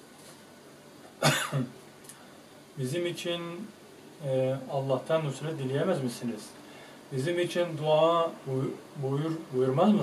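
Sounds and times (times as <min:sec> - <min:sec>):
man coughing: 0:01.2 - 0:01.8.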